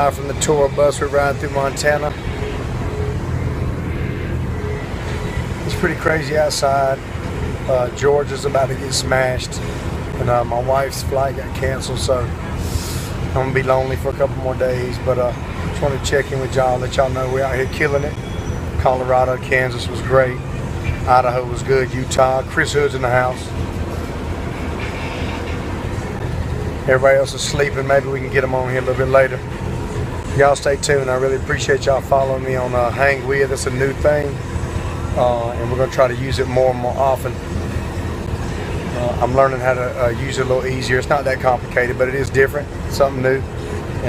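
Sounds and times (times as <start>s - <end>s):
bus driving rumble from inside: 0.0s - 44.0s.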